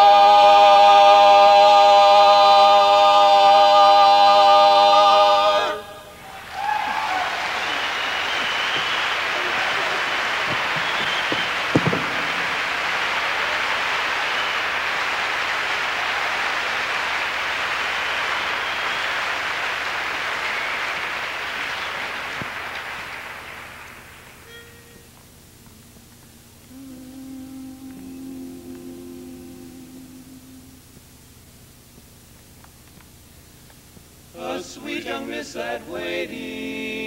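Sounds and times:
male a cappella chord: 0.0 - 6.2, 26.7 - 31.2, 34.3 - 37.0
audience applause: 6.2 - 24.4.

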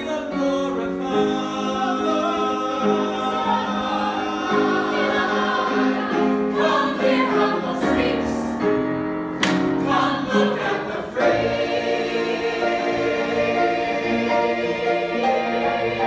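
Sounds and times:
group singing in harmony: 0.0 - 16.0.

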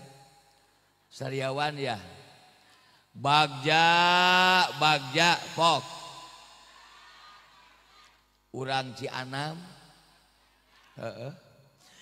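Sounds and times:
steady background hiss: 0.0 - 12.0
voice echoing over a pa: 1.2 - 7.2.

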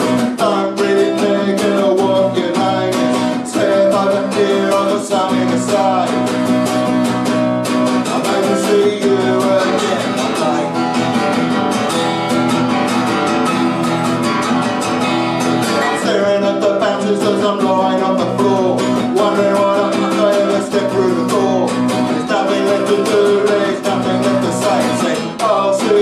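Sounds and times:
acoustic guitar strumming: 0.0 - 26.0.

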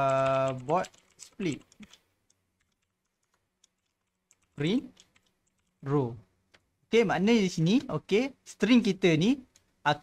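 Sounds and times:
soft keyboard typing: 0.0 - 6.7.

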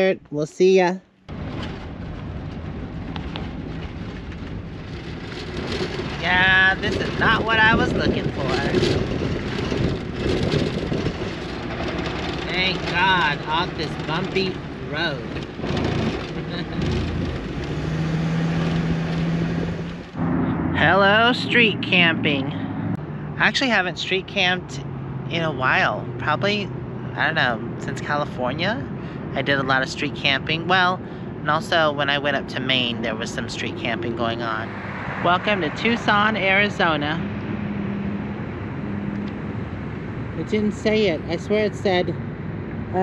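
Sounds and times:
steady low drone: 1.3 - 28.2
vehicle cab rumble on dirt road: 1.3 - 43.0.

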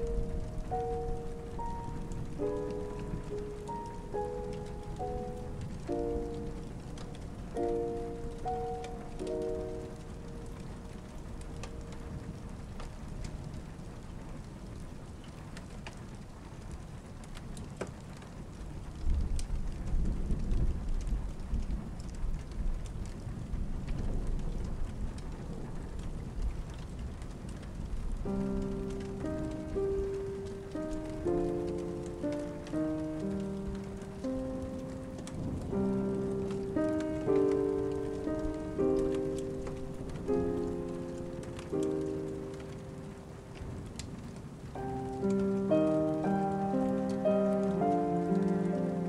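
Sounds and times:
soft instrumental music: 0.0 - 13.4, 28.2 - 44.0, 44.7 - 49.0
rain hissing against windows: 0.0 - 49.0
thunder rumble: 0.0 - 49.0.

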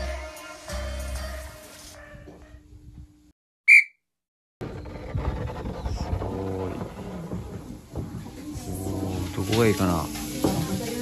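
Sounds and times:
high whistle-like tone: 3.7 - 4.0.

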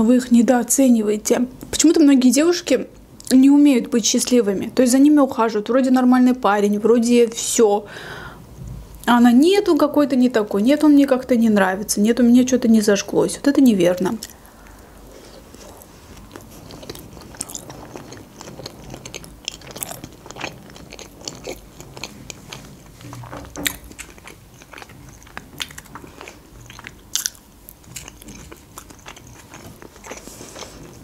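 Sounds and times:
person chewing food: 14.2 - 31.0.

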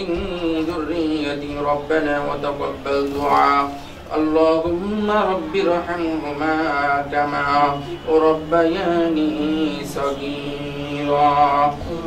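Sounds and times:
man chanting slowly: 0.0 - 12.0.

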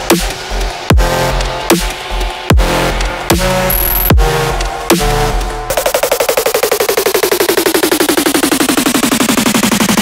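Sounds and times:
rapid electronic hits sliding down: 0.0 - 10.0.

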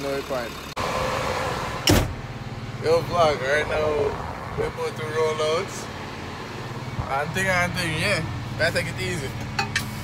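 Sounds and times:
diesel engine idling: 0.0 - 10.0
loud thump: 1.8 - 2.2.

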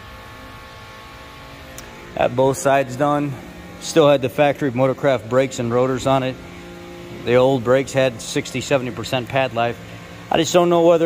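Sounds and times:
repair shop hum: 0.0 - 11.0.

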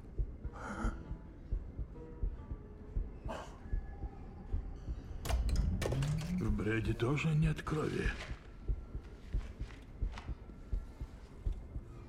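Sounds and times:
heartbeat-like thudding pulse: 0.0 - 6.2, 8.0 - 12.0.

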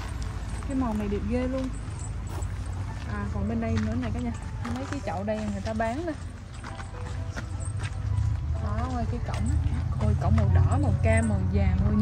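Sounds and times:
footsteps on gravel: 0.0 - 12.0.

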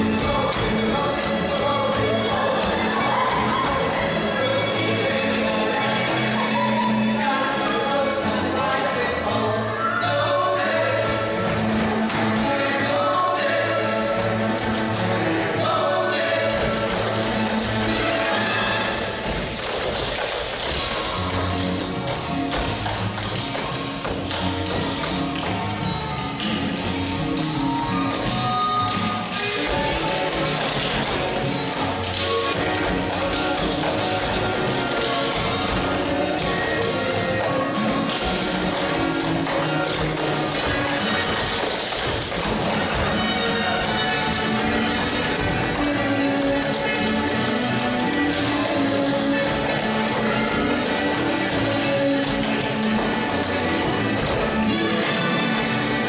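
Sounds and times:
tap shoes striking stage floor: 0.0 - 9.0, 10.4 - 56.0
recorded music backing track: 0.0 - 56.0.

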